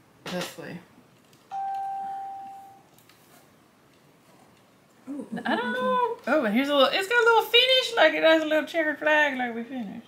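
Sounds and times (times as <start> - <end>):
clear chime tone: 1.5 - 2.8.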